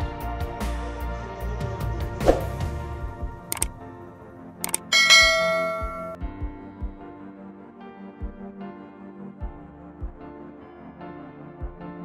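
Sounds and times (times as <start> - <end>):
soft background music: 0.0 - 12.0
quick clicks: 3.5 - 3.8, 4.6 - 6.2
bright bell ding: 4.7 - 6.2.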